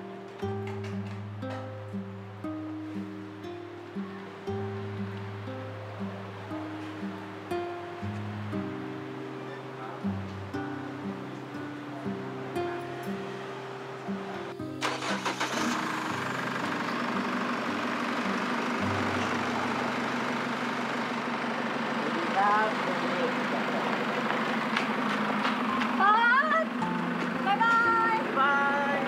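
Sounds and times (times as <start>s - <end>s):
car engine pulling away: 0.0s - 29.0s
soft guitar music: 0.0s - 29.0s.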